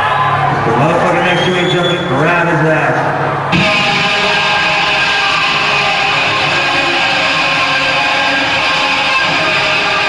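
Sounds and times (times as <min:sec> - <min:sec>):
distorted electric guitars playing: 0:03.1 - 0:10.0.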